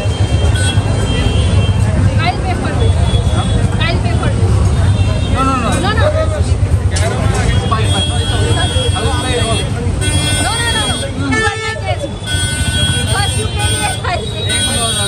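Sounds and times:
vehicle horns blasting: 0.0 - 2.0, 7.3 - 15.0
loud talk and crowd chatter: 0.0 - 15.0.

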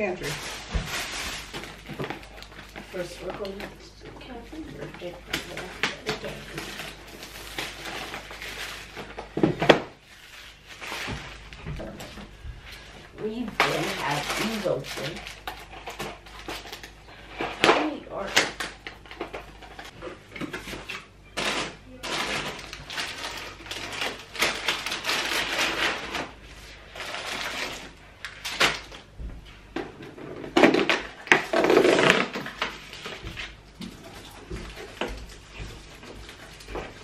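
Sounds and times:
plastic packaging crinkling: 0.0 - 29.1.

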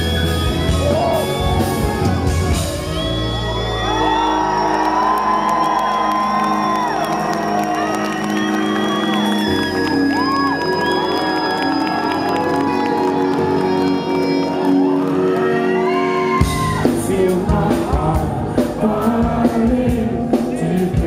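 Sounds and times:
crowd whooping and cheering: 0.0 - 17.3
live rock band playing: 0.0 - 21.0.

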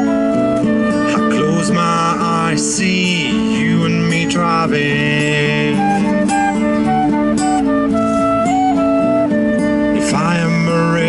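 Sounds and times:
flute melody: 0.0 - 11.0
strummed acoustic guitar: 0.0 - 11.0.

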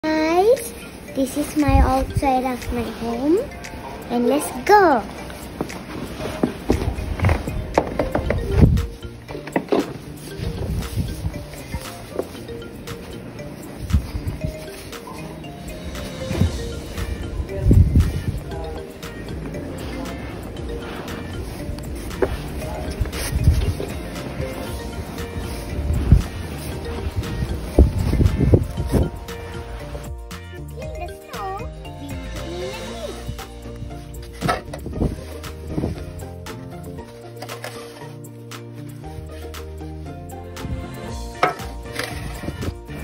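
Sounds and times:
background music: 0.0 - 43.0
wind buffeting microphone: 6.7 - 9.1, 10.3 - 11.8, 15.9 - 19.6, 20.4 - 29.8, 33.2 - 36.1.

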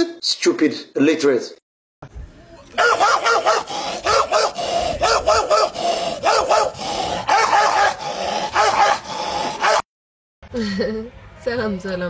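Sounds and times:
man imitating dog barking: 2.8 - 9.8.

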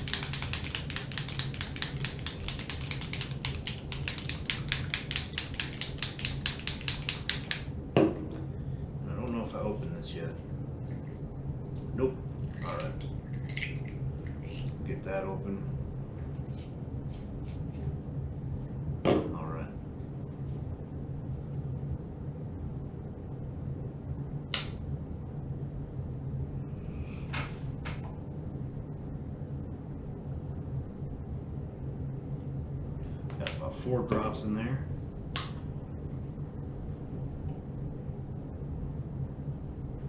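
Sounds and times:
air compressor humming: 0.0 - 9.4.

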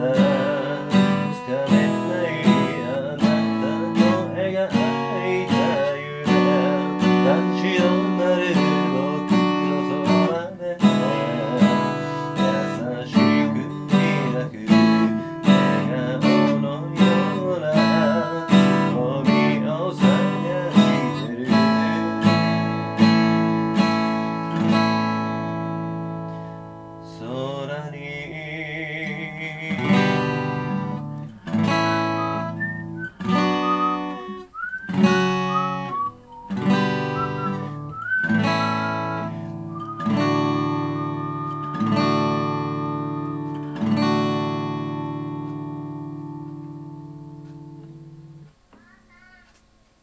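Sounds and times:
acoustic guitar strummed chords: 0.0 - 48.6.

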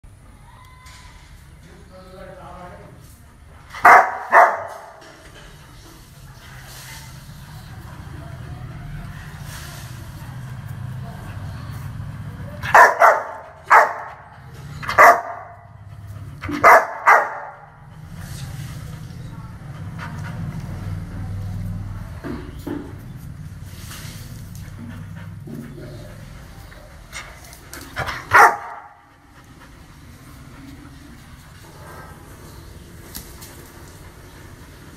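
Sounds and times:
large dog barking: 3.8 - 5.0, 12.6 - 15.8, 16.4 - 17.8, 28.0 - 29.0.

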